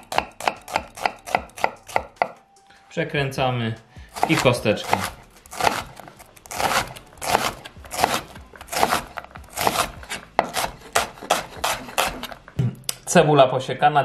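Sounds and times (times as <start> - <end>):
knife dicing onion on wooden board: 0.0 - 2.4, 4.1 - 12.4.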